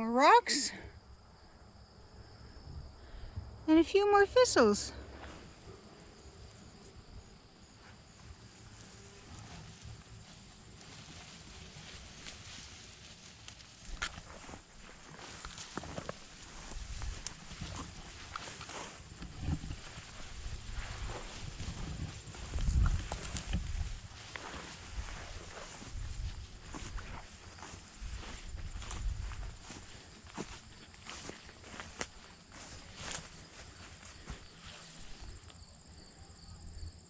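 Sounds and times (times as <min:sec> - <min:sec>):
rustling through dry weeds: 0:05.0 - 0:35.5.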